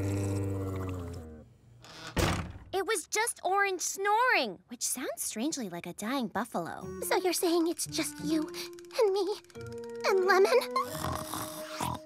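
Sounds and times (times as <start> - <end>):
cartoon snoring: 0.0 - 1.4, 10.6 - 12.0.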